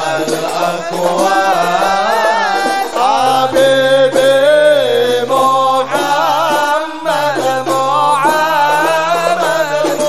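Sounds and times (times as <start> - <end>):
devotional chanting in long notes: 0.0 - 10.0.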